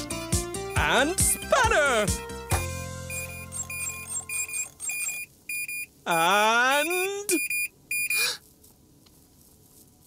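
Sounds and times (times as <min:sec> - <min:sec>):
short electronic beeps: 0:00.0 - 0:01.6, 0:02.5 - 0:08.2
low musical chord: 0:00.0 - 0:03.1.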